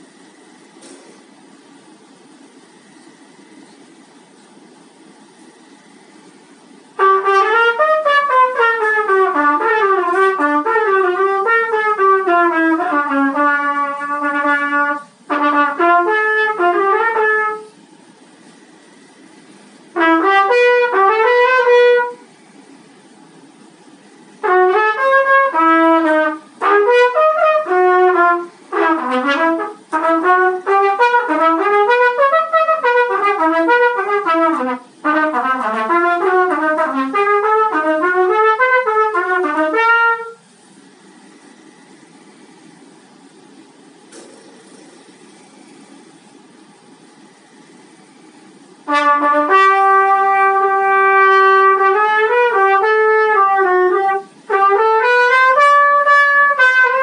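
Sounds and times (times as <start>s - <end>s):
solo trumpet playing fast runs: 7.0s - 17.7s, 20.0s - 22.2s, 24.4s - 40.4s, 48.8s - 57.0s.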